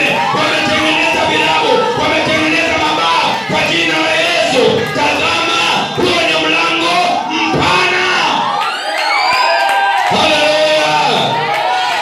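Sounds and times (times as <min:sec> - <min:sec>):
congregation singing and calling out: 0:00.0 - 0:12.0.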